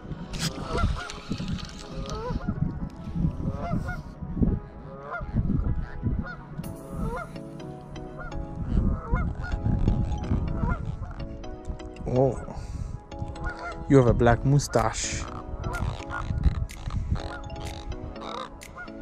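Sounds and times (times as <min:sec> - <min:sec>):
wind rumbling on microphone: 0:00.0 - 0:07.4, 0:08.2 - 0:19.0
geese honking: 0:00.4 - 0:02.6, 0:03.4 - 0:04.0, 0:04.7 - 0:07.4, 0:08.2 - 0:11.3, 0:13.4 - 0:14.0, 0:14.7 - 0:19.0.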